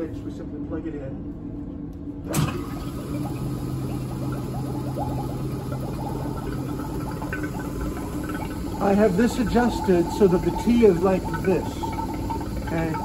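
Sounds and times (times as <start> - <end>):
vacuum pump humming and pulsing: 2.0 - 13.0.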